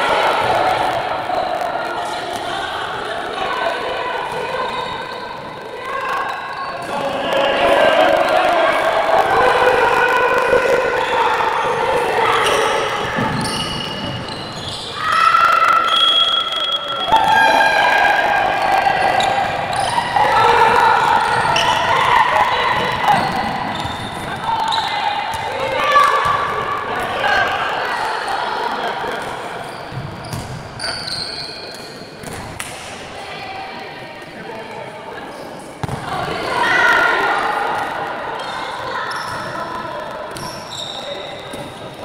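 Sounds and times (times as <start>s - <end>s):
voices shouting and calling: 0.0s - 29.7s
ball bouncing on hardwood court: 29.9s - 30.6s, 35.8s - 36.1s.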